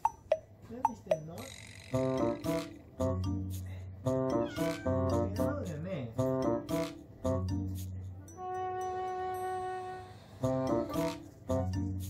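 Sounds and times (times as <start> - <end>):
background music: 1.9 - 12.0
cat meowing: 4.4 - 5.0.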